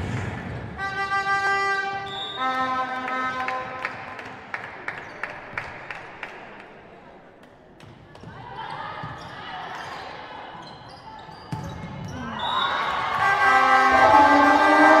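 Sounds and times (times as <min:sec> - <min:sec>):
voices in a hall: 0:04.0 - 0:15.0
ball bouncing on court floor: 0:11.4 - 0:12.3.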